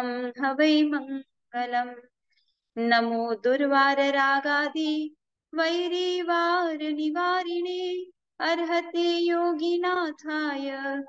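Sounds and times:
woman chanting: 0.0s - 2.1s, 2.8s - 11.0s.

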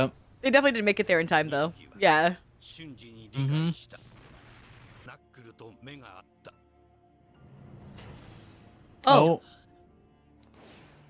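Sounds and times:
male narrator speaking: 2.6s - 4.0s, 5.1s - 6.6s.

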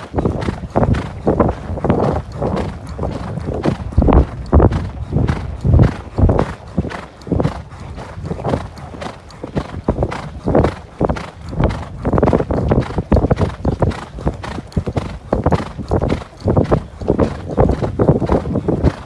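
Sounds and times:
horse hooves thudding on sand: 0.0s - 19.0s.

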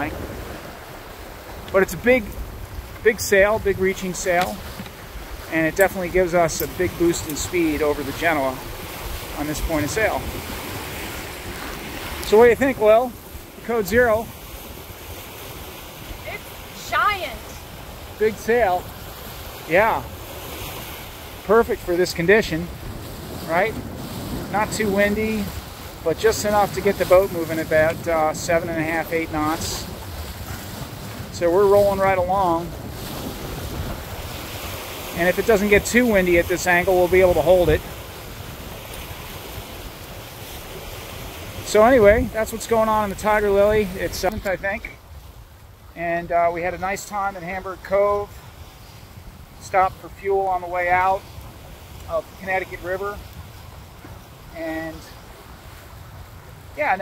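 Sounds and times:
wind rumbling on microphone: 0.0s - 46.0s
bow wave hissing along hull: 0.0s - 57.0s.

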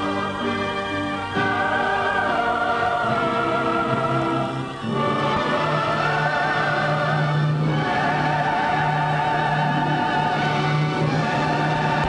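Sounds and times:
choir singing held notes: 0.0s - 12.0s
orchestra: 0.0s - 12.0s.

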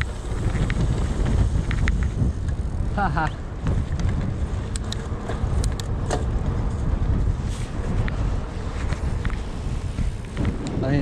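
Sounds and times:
bike clicks and rattles: 0.0s - 11.0s
wind rumbling on microphone: 0.0s - 11.0s.

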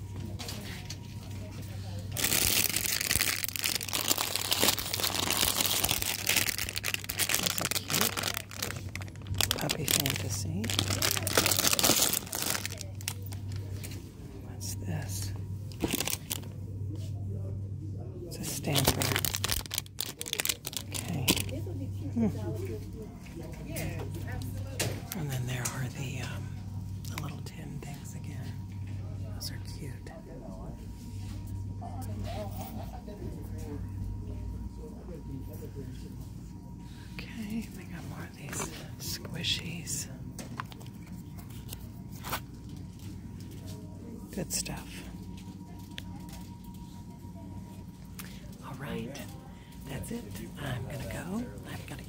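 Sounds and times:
muffled voices talking: 0.0s - 52.0s
steady low hum: 0.0s - 52.0s
plastic packets crinkling: 2.1s - 13.7s, 15.7s - 16.5s, 18.4s - 21.6s.

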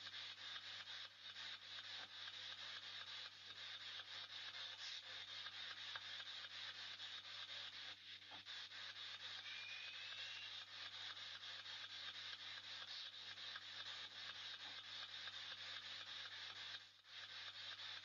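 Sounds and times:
steady hiss: 0.0s - 18.0s
faint rising whistle: 9.4s - 10.5s.

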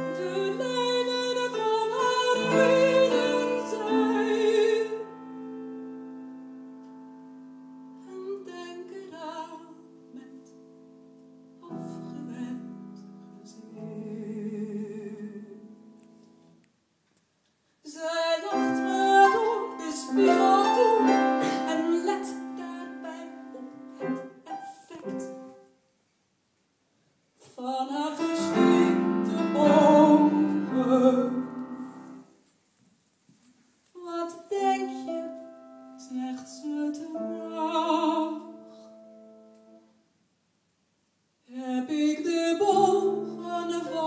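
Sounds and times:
woman singing: 0.0s - 5.2s, 8.0s - 10.6s, 11.6s - 15.8s, 17.8s - 25.6s, 27.4s - 32.2s, 34.0s - 39.0s, 41.5s - 44.0s
piano: 0.0s - 25.8s, 27.4s - 32.6s, 33.4s - 40.2s, 41.4s - 44.0s.

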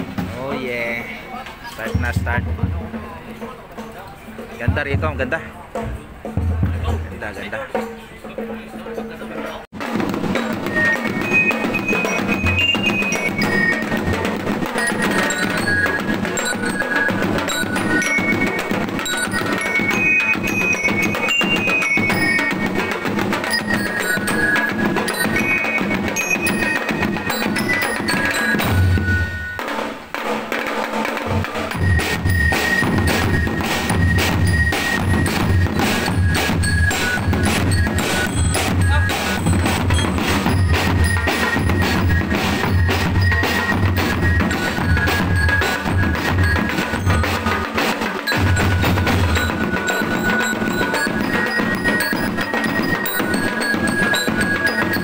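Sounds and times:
snare and bass drums: 0.0s - 55.0s
bell lyres ringing a melody: 0.4s - 30.0s, 30.6s - 55.0s.

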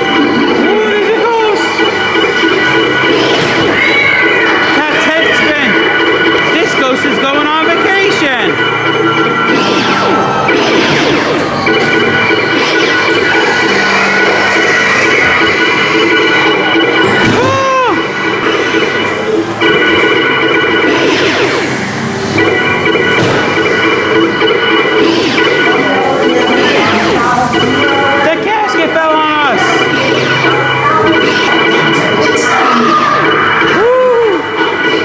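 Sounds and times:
spooky music: 0.0s - 35.0s
swooping tone: 0.0s - 35.0s
recorded voices: 25.7s - 33.2s.

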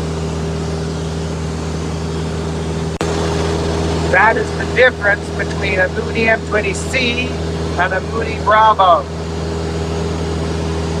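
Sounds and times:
aircraft engine and propeller droning: 0.0s - 11.0s.

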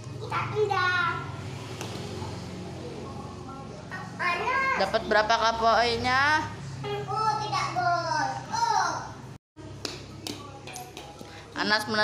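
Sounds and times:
child's voice: 0.0s - 1.3s, 6.8s - 9.2s.

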